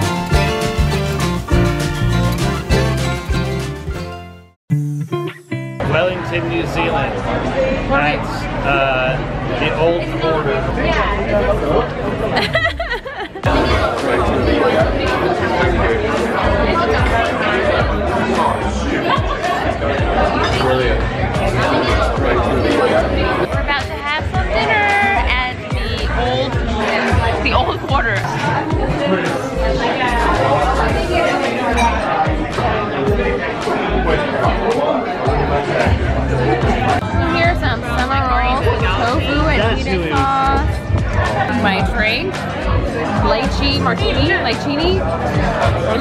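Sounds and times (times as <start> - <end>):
background music: 0.0 - 8.8, 12.3 - 46.0
diners talking: 5.8 - 46.0.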